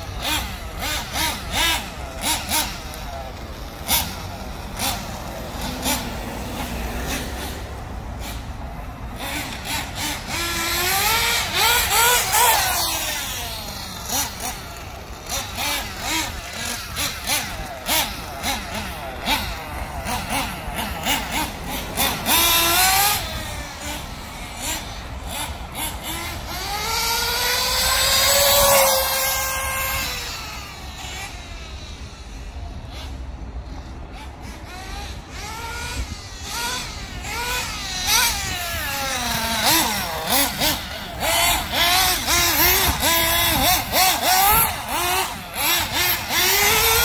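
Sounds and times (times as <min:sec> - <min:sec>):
small engine revving: 0:00.0 - 0:47.0.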